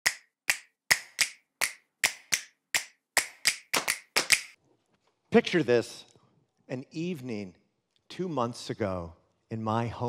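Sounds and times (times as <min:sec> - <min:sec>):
sharp percussive clicks: 0:00.0 - 0:04.6.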